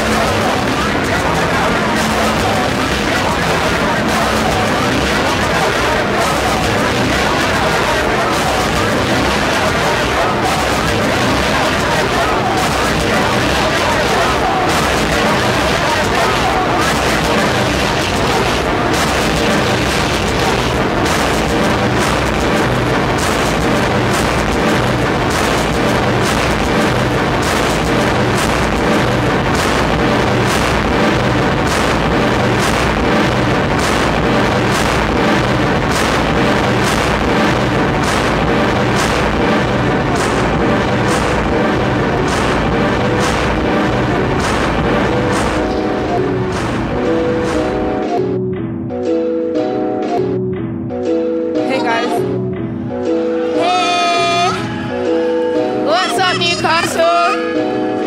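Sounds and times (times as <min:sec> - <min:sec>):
experimental electronic music: 0:00.0 - 0:58.0
sharp rhythmic hits: 0:00.0 - 0:58.0.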